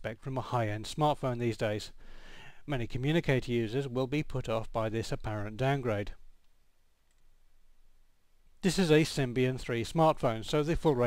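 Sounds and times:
very faint clicks: 0:06.4 - 0:07.4.

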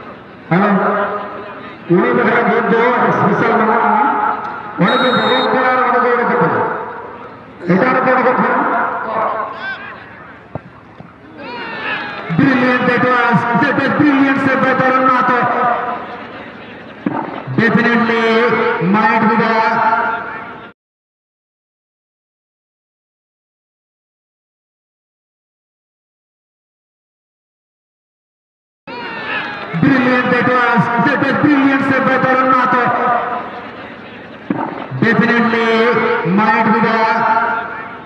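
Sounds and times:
low crowd murmur: 0:00.0 - 0:20.7, 0:28.9 - 0:38.0
man commentating: 0:00.5 - 0:07.0, 0:07.6 - 0:10.5, 0:12.2 - 0:16.0, 0:17.5 - 0:20.6, 0:29.6 - 0:33.5, 0:34.9 - 0:38.0
sharp knock: 0:34.5 - 0:35.0.

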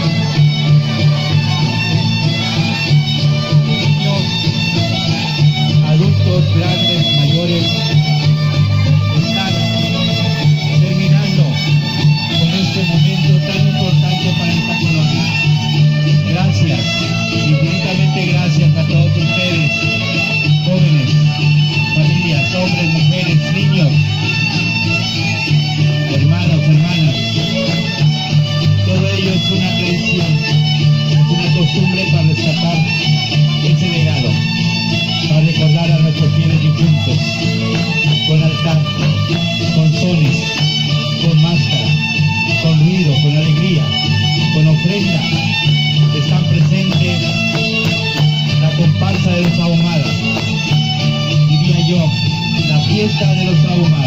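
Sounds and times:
guitars playing folk music: 0:00.0 - 0:54.0
string band dance tune: 0:00.0 - 0:54.0.

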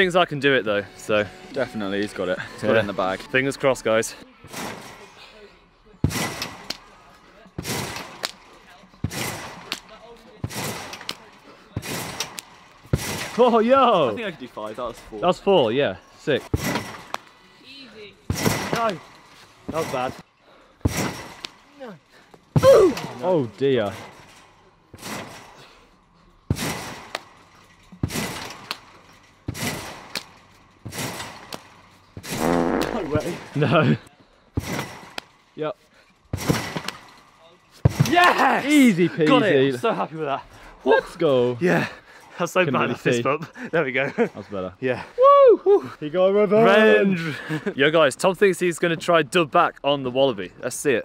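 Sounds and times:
trampoline thuds: 0:04.4 - 0:05.2, 0:06.0 - 0:07.0, 0:07.6 - 0:15.2, 0:16.4 - 0:17.4, 0:18.2 - 0:33.8, 0:34.5 - 0:35.4, 0:36.2 - 0:38.6.

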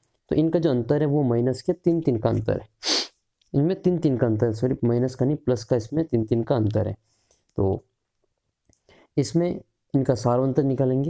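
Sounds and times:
person speaking: 0:00.3 - 0:07.9.

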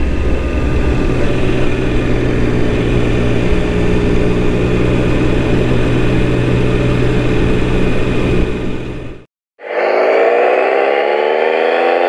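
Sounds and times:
rising sustained tone: 0:00.0 - 0:12.0.

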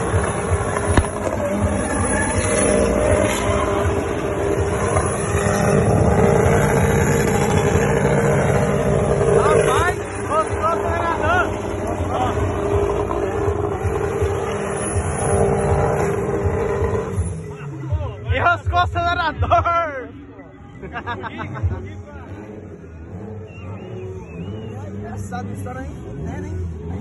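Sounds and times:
car engine at high revs: 0:00.0 - 0:19.0, 0:20.8 - 0:27.0
tyres spinning on asphalt: 0:00.0 - 0:20.2.

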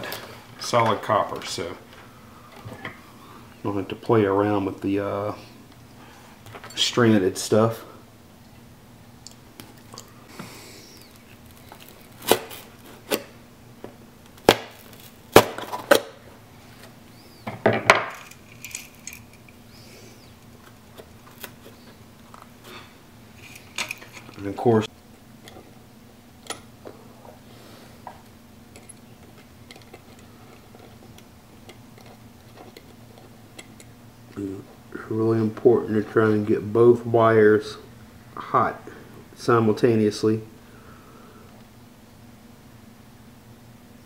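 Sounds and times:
faint steady hum: 0:00.0 - 0:44.0.

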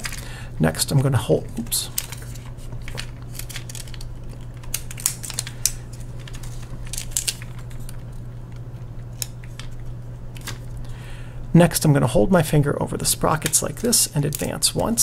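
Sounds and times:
steady low hum: 0:00.0 - 0:15.0
film being handled clicks and rustles: 0:01.9 - 0:10.7.

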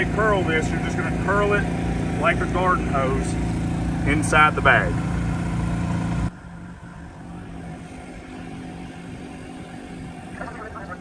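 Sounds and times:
engine hum: 0:00.0 - 0:11.0
outdoor background noise: 0:00.0 - 0:11.0.

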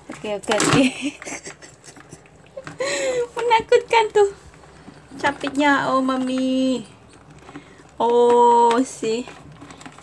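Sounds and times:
woman speaking: 0:00.0 - 0:01.2, 0:03.1 - 0:04.5, 0:05.1 - 0:07.0, 0:08.0 - 0:09.4
crabs scraping plastic bucket: 0:02.0 - 0:10.0.

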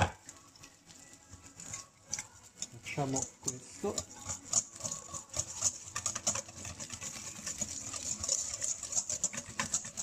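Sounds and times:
whisk scraping metal bowl: 0:00.2 - 0:10.0.

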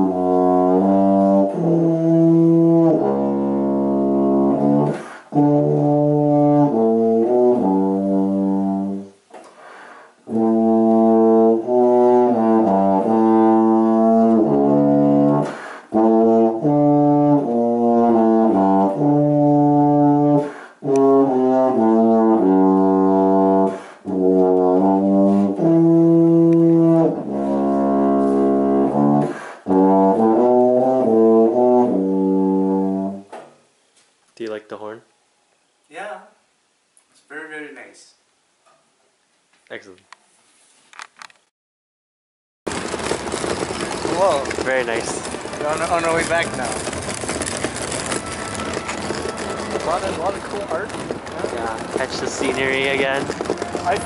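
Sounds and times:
tuba playing: 0:00.0 - 0:09.2, 0:10.2 - 0:33.3, 0:43.0 - 0:54.0.

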